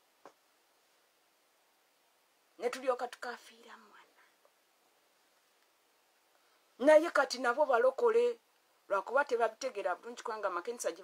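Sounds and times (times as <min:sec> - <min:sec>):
woman speaking: 0:02.6 - 0:04.3, 0:06.8 - 0:11.0.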